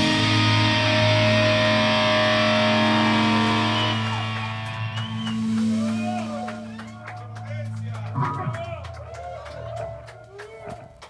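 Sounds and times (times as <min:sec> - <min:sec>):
electric guitar and bass chord: 0:00.0 - 0:09.1.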